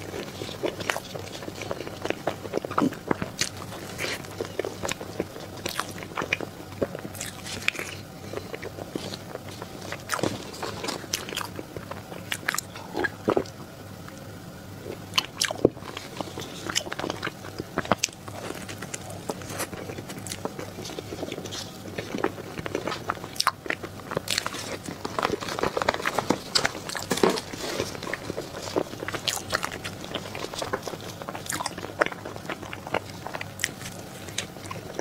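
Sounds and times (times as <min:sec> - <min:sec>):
chewing soft cake: 0:00.0 - 0:35.0.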